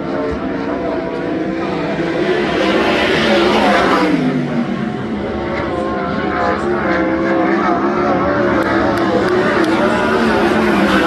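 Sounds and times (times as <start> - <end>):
race car engine: 0.0 - 11.0.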